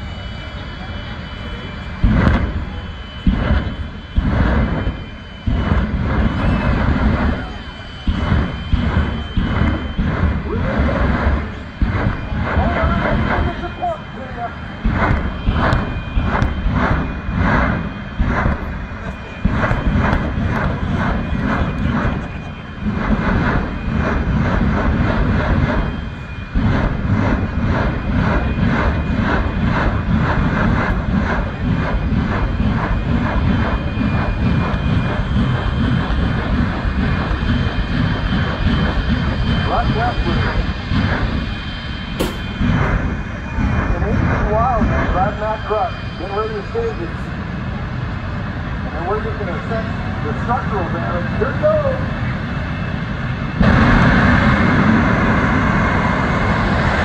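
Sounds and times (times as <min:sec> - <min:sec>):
jet engine roaring with pulsing: 0:00.0 - 0:57.0.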